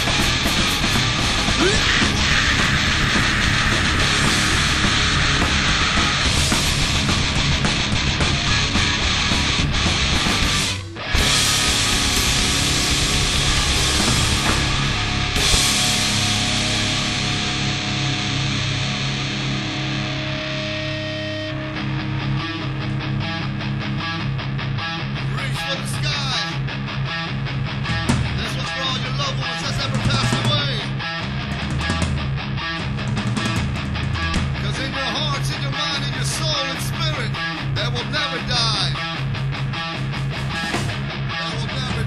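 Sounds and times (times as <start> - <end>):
choppy guitar riff with drum hits: 0.0 - 42.0
heavy metal band playing live: 0.0 - 42.0.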